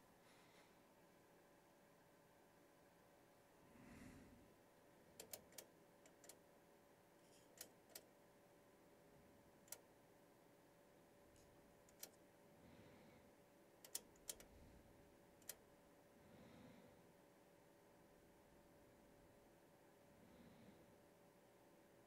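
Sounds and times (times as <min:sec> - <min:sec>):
faint electronic hum: 0:00.0 - 0:22.0
test equipment controls clicking: 0:05.1 - 0:06.4, 0:07.4 - 0:08.1, 0:09.6 - 0:09.9, 0:11.4 - 0:12.2, 0:13.8 - 0:14.5, 0:15.4 - 0:15.6.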